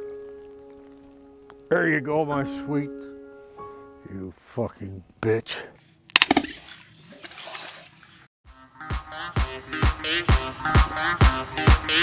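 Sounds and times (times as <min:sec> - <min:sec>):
water splashing in a pool: 0:06.2 - 0:08.3
funk music with strong beat: 0:08.8 - 0:12.0.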